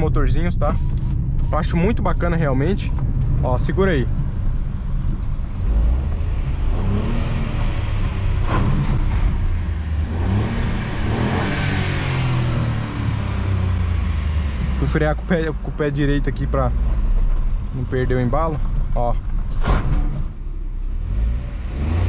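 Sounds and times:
car engine revving: 0:00.0 - 0:22.0.

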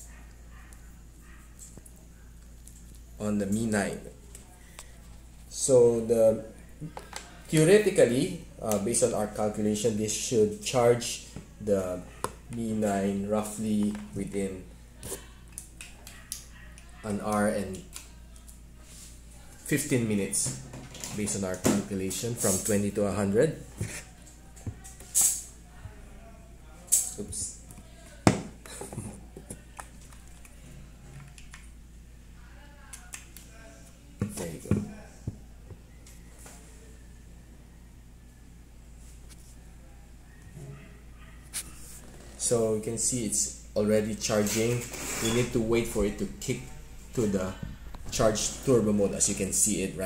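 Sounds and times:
low steady hum: 0:00.0 - 0:50.0.

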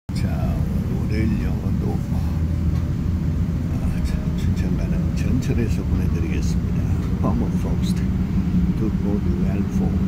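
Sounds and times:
low rumble: 0:00.1 - 0:10.0.

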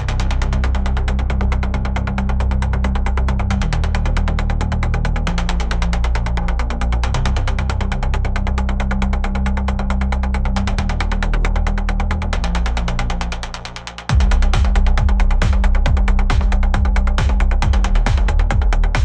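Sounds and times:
droning electronic bass: 0:00.0 - 0:19.0
fast ticking beat: 0:07.9 - 0:19.0.

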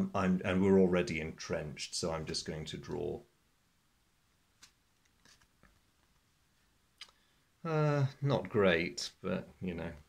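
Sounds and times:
cardboard cards rustling: 0:04.6 - 0:06.3.

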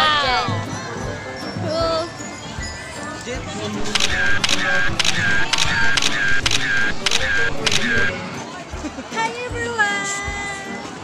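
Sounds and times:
crowd voices: 0:00.0 - 0:11.0
music: 0:00.0 - 0:11.0
sharp clicks with short beeps: 0:03.8 - 0:08.2.

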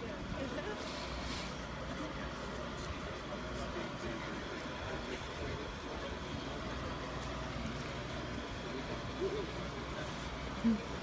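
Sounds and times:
engine running with low hum: 0:00.0 - 0:11.0.

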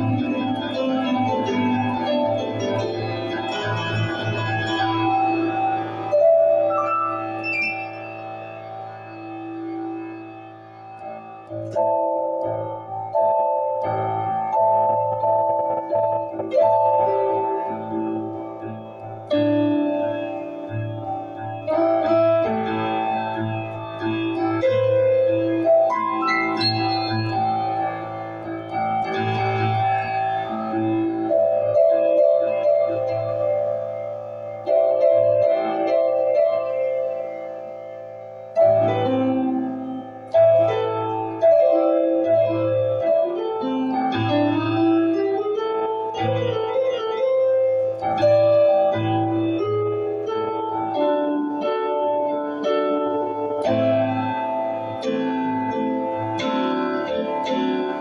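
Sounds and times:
piano-like keyboard music: 0:00.0 - 0:58.0.

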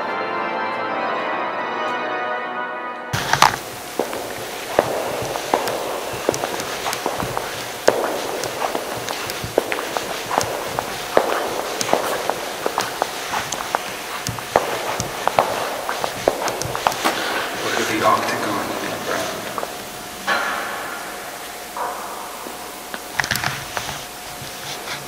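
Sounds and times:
footsteps on stone floor: 0:03.2 - 0:20.0, 0:22.4 - 0:25.0
clicks and knocks echoing: 0:03.2 - 0:23.4
steady background hiss: 0:03.2 - 0:25.0.

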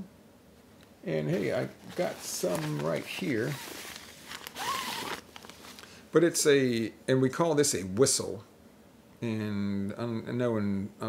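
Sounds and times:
zipper being pulled open: 0:01.9 - 0:05.3.

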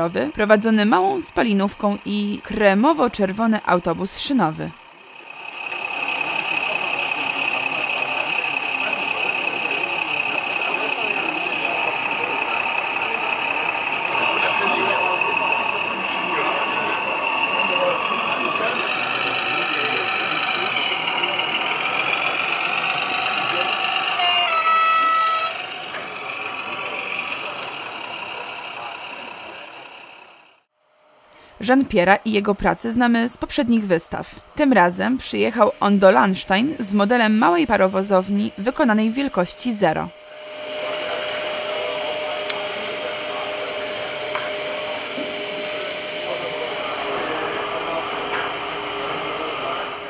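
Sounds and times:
indistinct voices: 0:00.0 - 0:30.6, 0:31.4 - 0:50.0
model train whine: 0:00.0 - 0:50.0.

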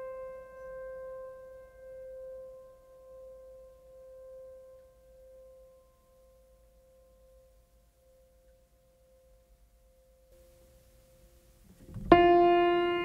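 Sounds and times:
held piano note: 0:11.8 - 0:13.0.

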